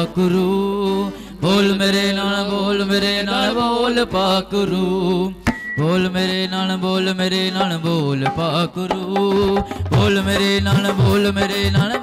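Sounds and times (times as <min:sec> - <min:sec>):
amplified devotional singing: 0:00.0 - 0:12.0.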